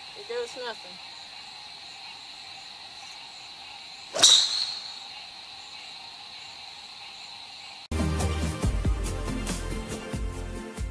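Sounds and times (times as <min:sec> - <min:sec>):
crickets chirping: 0:00.0 - 0:07.9
golf club swish: 0:04.1 - 0:05.1
golf ball impact crack: 0:04.1 - 0:05.2.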